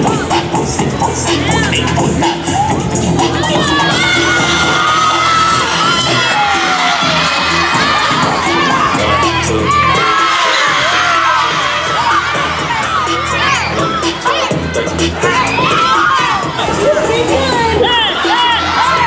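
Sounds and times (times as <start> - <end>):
children shouting and cheering: 0.0 - 19.0
music playing: 0.0 - 19.0.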